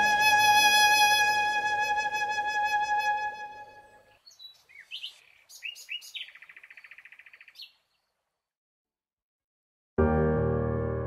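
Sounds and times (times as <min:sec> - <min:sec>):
bird chirping and trilling: 0:04.0 - 0:08.0.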